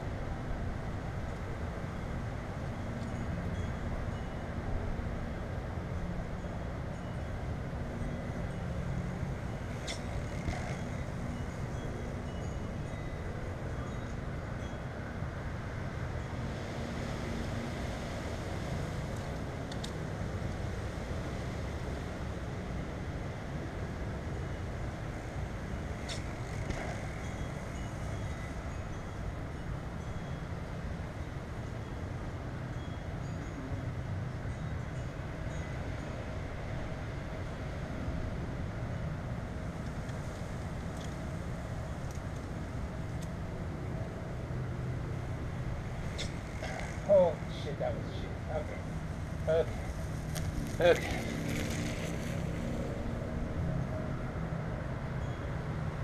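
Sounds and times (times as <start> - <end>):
low outdoor rumble: 17.2 - 56.0.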